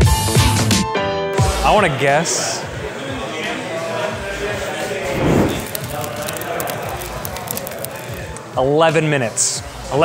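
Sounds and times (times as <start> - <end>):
flame whooshing: 5.0 - 6.4
fire crackling: 5.0 - 8.4.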